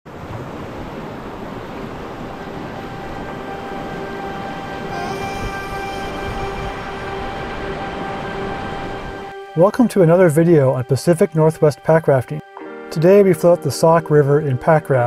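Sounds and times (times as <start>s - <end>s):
rushing whitewater: 0.1s - 15.0s
steady held musical tone: 1.8s - 15.0s.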